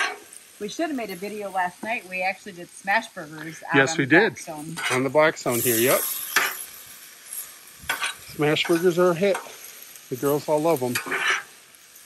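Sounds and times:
metal spatula scraping griddle: 0.0s - 1.2s, 4.6s - 12.0s
chicken sizzling on a griddle: 0.0s - 12.0s.

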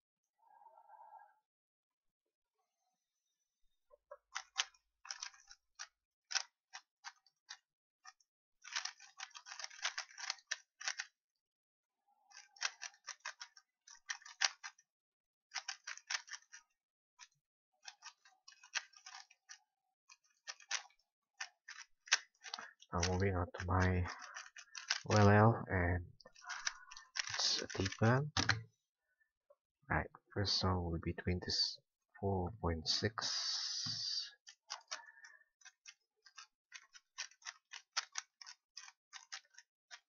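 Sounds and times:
plastic puzzle cube clicking: 4.4s - 11.1s, 12.3s - 14.8s, 15.5s - 23.2s, 23.8s - 25.3s, 26.3s - 28.6s, 33.8s - 40.0s.

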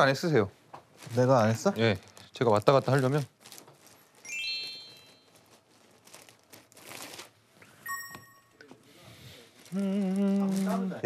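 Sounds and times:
plastic bag crinkling: 0.9s - 7.6s, 9.2s - 11.0s
bell-like chime: 4.3s - 5.2s, 7.8s - 8.6s
rising chime sound effect: 4.3s - 5.2s, 7.8s - 8.6s.

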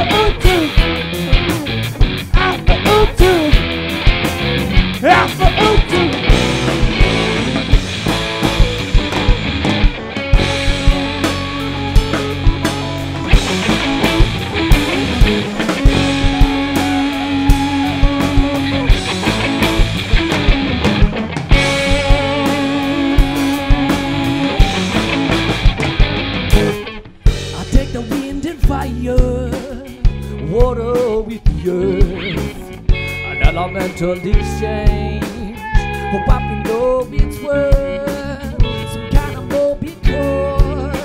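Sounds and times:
bass guitar: 0.0s - 41.0s
drum-kit beat: 0.0s - 41.0s
electric guitars: 0.0s - 41.0s.

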